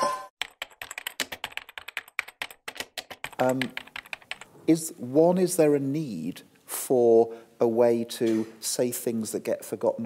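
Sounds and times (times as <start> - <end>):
laptop keyboard typing: 0.4 - 4.5.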